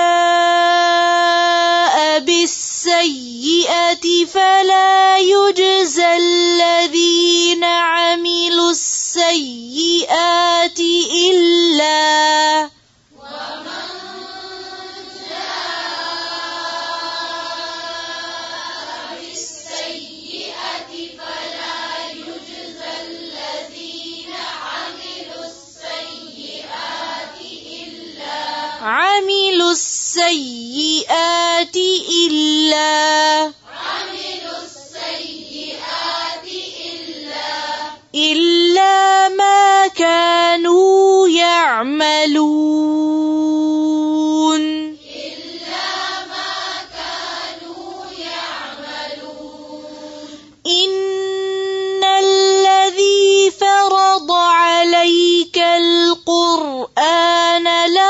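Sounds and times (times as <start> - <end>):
woman chanting a verse: 0.0 - 46.3, 46.9 - 58.0
soft hazy recitation: 0.0 - 58.0
woman reciting melodically: 0.0 - 58.0.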